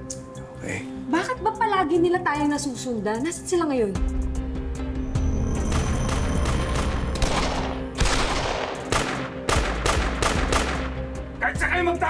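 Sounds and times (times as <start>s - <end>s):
handgun shots: 7.1s - 10.9s.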